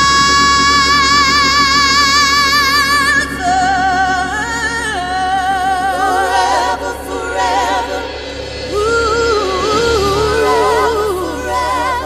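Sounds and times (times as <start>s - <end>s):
sustained organ chords: 0.0s - 12.0s
woman singing long high note: 0.6s - 12.0s.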